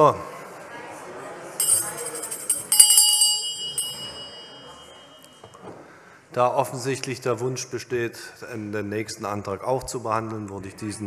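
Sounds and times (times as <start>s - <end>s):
small bell ringing: 1.6s - 5.4s.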